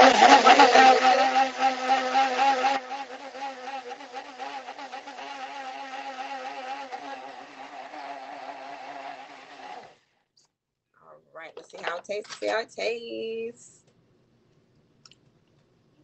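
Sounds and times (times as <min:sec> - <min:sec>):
blender motor whining: 0:00.0 - 0:10.0.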